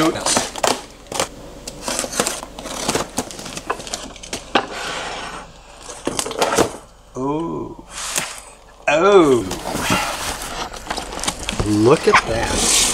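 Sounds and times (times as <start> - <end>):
cardboard tearing and rustling: 0.0 - 4.5, 9.4 - 12.9.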